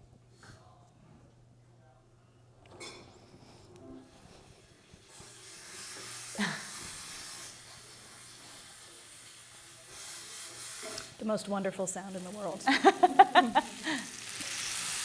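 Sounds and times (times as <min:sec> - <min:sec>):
potatoes sizzling in a pan: 0:05.2 - 0:15.0.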